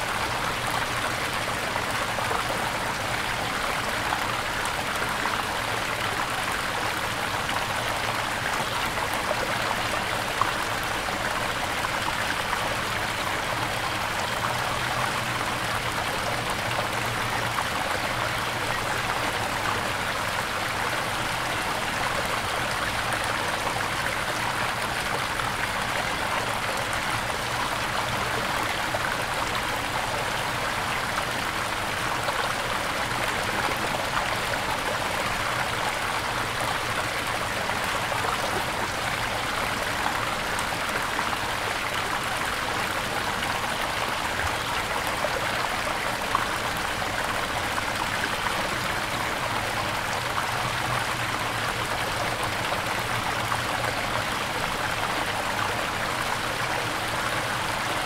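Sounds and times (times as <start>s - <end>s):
running water rushing: 0.0s - 58.0s.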